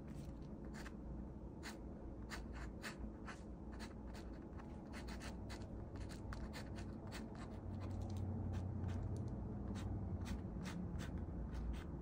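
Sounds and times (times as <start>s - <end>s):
pen scratching on paper: 0.7s - 0.9s, 1.6s - 12.0s.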